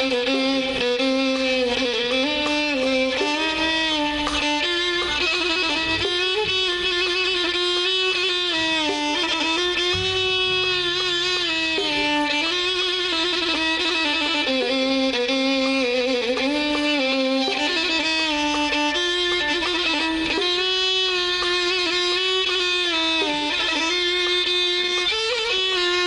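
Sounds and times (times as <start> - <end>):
oud: 0.0 - 26.0
violins playing slow melody: 0.0 - 26.0.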